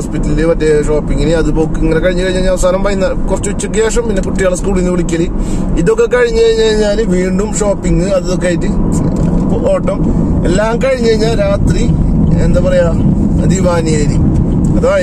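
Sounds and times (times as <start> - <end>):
man talking: 0.0 - 15.0
road and engine noise: 0.0 - 15.0.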